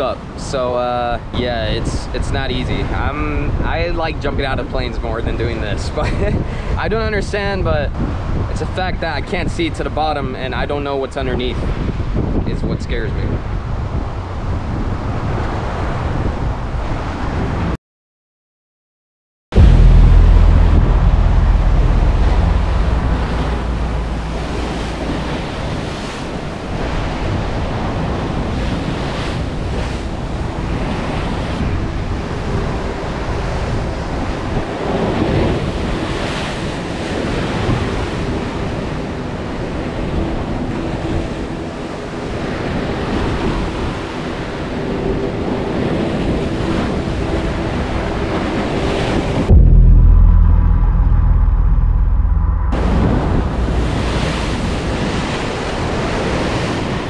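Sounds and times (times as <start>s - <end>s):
wind on microphone: 1.2s - 10.4s, 11.3s - 17.8s, 19.6s - 57.0s
loud muffled low rumble: 19.5s - 25.9s, 47.2s - 55.6s
ocean surf crashing on rocks: 19.6s - 49.5s, 52.8s - 57.0s.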